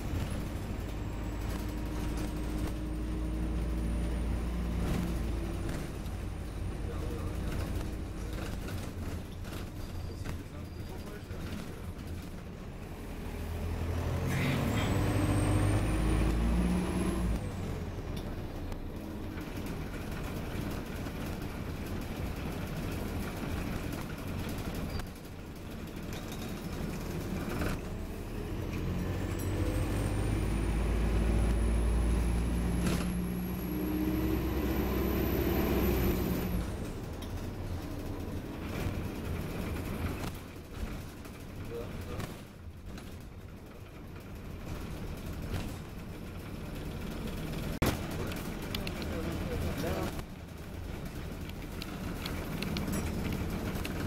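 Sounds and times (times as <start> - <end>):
bus drivetrain rumble: 0.0 - 54.0.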